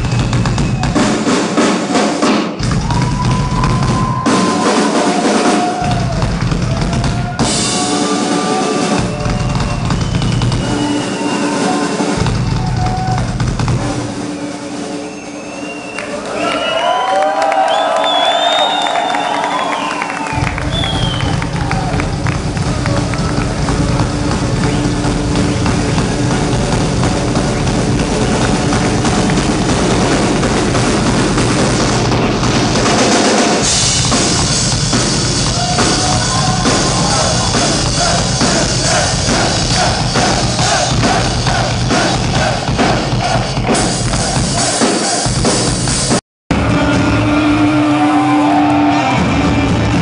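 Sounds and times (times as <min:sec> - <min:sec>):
audience whistle: 0:00.0 - 0:01.3, 0:02.8 - 0:13.3, 0:14.0 - 0:26.5, 0:35.4 - 0:42.6
live metal band playing: 0:00.0 - 0:15.2, 0:20.4 - 0:50.0.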